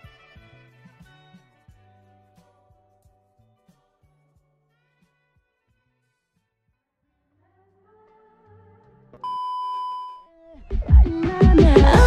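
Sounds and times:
electronic beep tone: 9.2 - 10.3.

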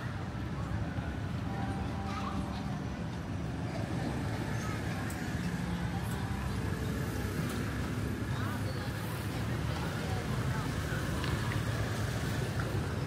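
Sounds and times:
motorbike traffic rumble: 0.0 - 13.0
people talking: 0.0 - 13.0.

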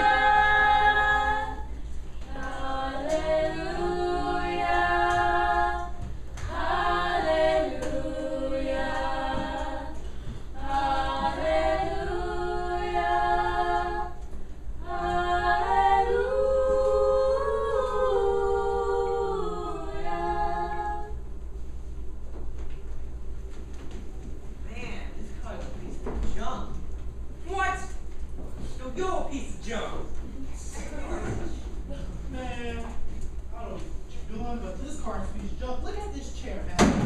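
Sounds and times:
voices singing a cappella: 0.0 - 21.2.

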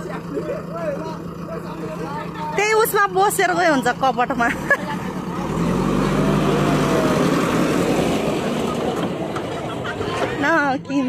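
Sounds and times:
diesel engine running under load: 0.0 - 11.0.

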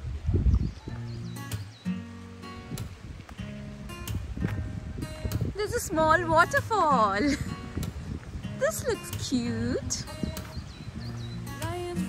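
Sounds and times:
acoustic guitar strumming: 1.0 - 12.0.

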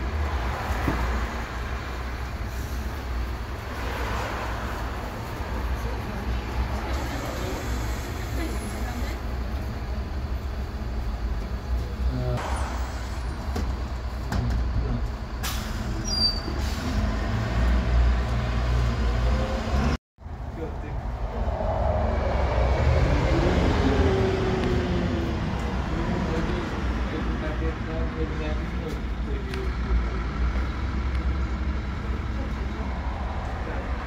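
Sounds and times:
bus driving away: 0.0 - 34.0
bus engine rumbling: 0.0 - 34.0.

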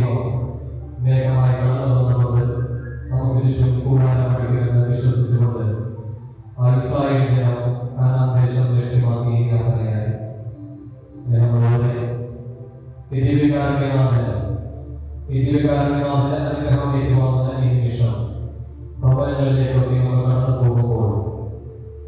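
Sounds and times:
man chanting a prayer: 0.0 - 6.0, 6.6 - 10.3, 11.2 - 12.3, 13.1 - 14.6, 15.3 - 18.4, 19.0 - 21.6.

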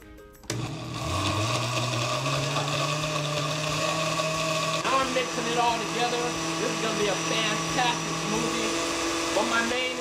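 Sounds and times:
blender motor running: 0.5 - 10.0.

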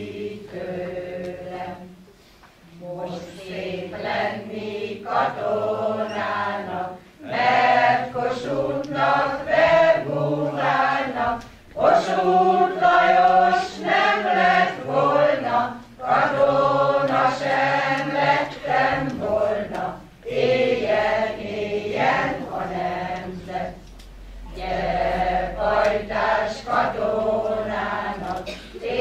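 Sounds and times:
choir singing unaccompanied: 0.0 - 29.0.

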